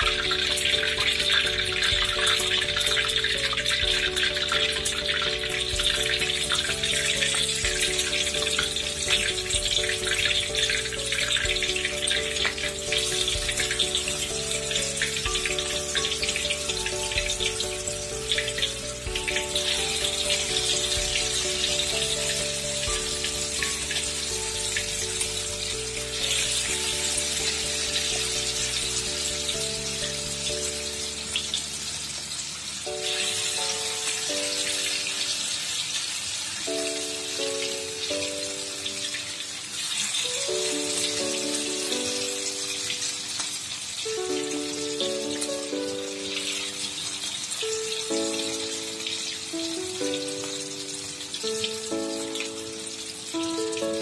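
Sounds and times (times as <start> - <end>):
instrumental music with held notes: 0.0 - 54.0
patties sizzling in hot oil: 0.0 - 54.0.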